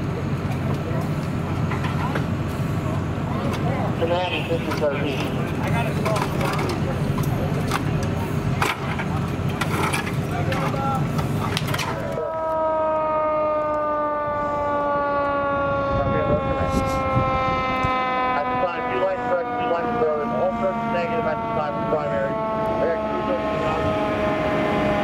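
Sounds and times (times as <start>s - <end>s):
fireground noise: 0.0s - 25.0s
mechanical siren winding down: 12.1s - 25.0s.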